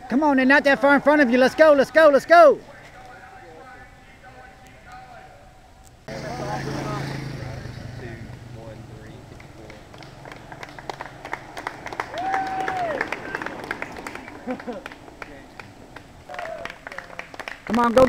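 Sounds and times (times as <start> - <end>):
motorcycle engine passing: 6.1 - 17.7
long held call: 8.2 - 17.9
spectators clapping and cheering: 9.4 - 18.0.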